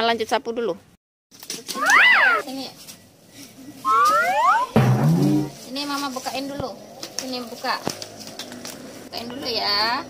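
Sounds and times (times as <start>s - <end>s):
cartoon whistle glide: 3.8s - 4.8s
rising slide whistle: 3.8s - 4.8s.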